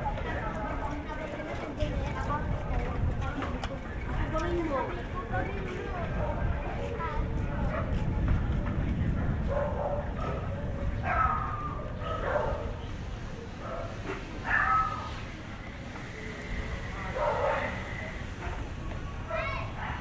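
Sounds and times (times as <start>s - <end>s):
street noise: 0.0s - 20.0s
voices: 0.0s - 20.0s
dog barking: 9.5s - 12.8s, 17.2s - 17.8s.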